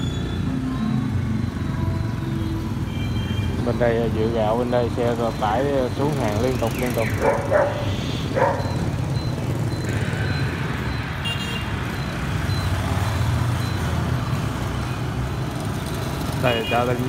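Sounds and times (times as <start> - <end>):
motorbikes and scooters passing: 0.0 - 17.0.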